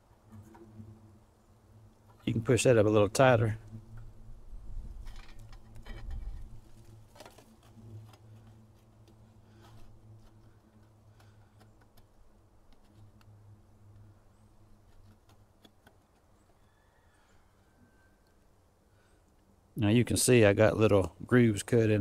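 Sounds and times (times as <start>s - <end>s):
faint low hum: 0.0s - 22.0s.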